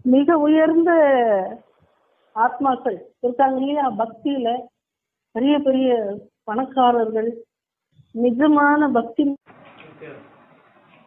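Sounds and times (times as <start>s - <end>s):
woman speaking: 0.0s - 1.6s, 2.4s - 4.7s, 5.4s - 7.5s, 8.2s - 9.4s
faint hiss: 1.3s - 3.2s, 9.5s - 11.0s.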